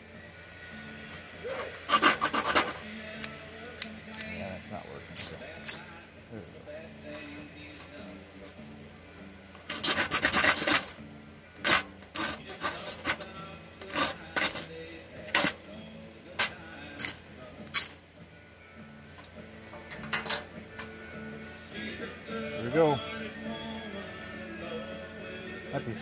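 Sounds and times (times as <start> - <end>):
knife scraping ferrocerium rod: 1.5 - 3.3, 9.6 - 11.0, 11.6 - 14.7, 15.3 - 15.6.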